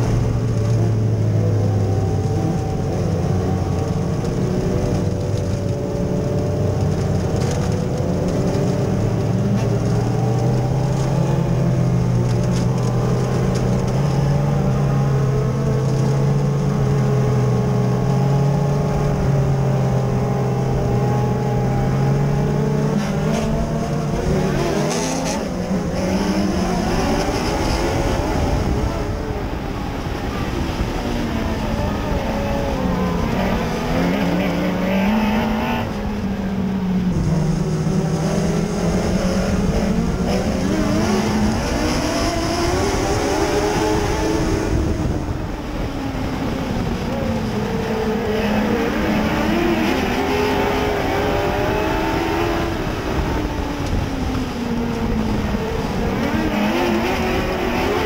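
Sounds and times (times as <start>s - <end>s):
race car engine at speed: 0.0s - 58.0s.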